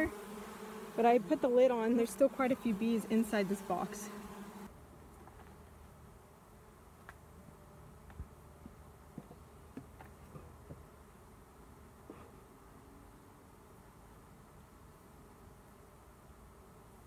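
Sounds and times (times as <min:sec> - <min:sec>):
bees buzzing: 0:00.0 - 0:04.7.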